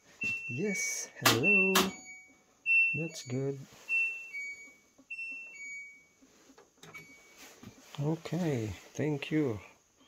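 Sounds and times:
washing machine end beeps: 0.2 - 6.2, 6.8 - 7.5.

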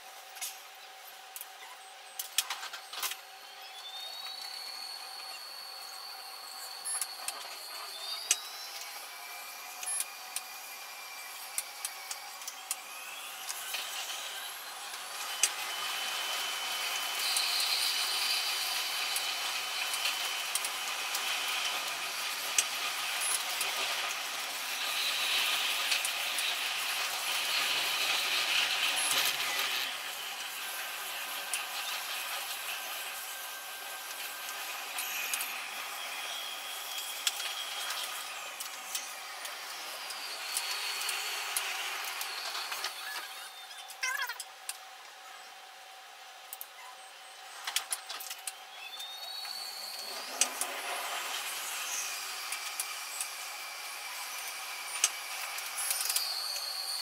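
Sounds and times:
electric motor whine: 0.0 - 44.0, 44.6 - 57.0
wheel and track clicks: 11.4 - 44.8, 47.6 - 57.0.

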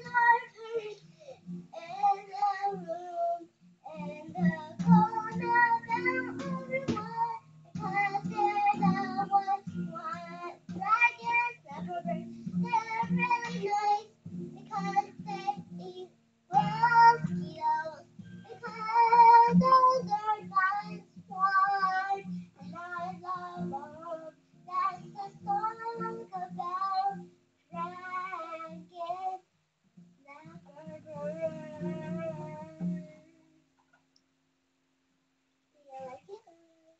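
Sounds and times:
girl singing: 0.0 - 29.5, 30.2 - 33.6, 35.8 - 36.9
acoustic guitar plucked: 3.9 - 29.2, 30.5 - 33.3.

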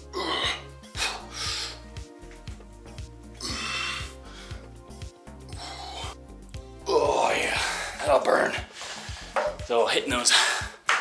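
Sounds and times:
man breathing hard: 0.0 - 2.1, 3.3 - 6.5, 7.5 - 9.4
background music with steady beat: 0.0 - 11.0.

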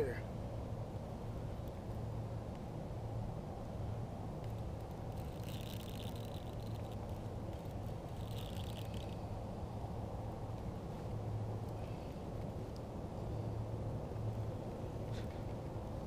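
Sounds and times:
fishing reel buzzing: 5.1 - 9.4.

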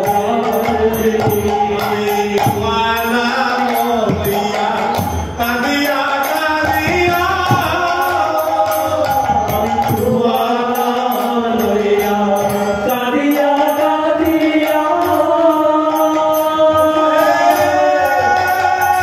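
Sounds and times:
hand cymbals beating: 0.0 - 19.0
harmonium: 0.0 - 19.0
men singing devotional songs: 0.0 - 19.0.

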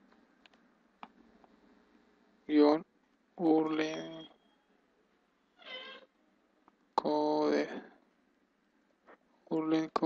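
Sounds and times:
cat meowing: 5.6 - 6.1.

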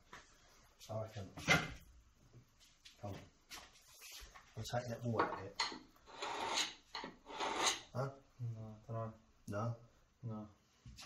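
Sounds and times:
blade scraping stone: 6.1 - 7.9.

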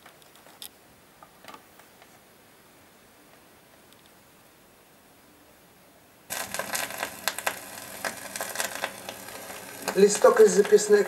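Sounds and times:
record surface hiss and crackles: 0.0 - 11.0.

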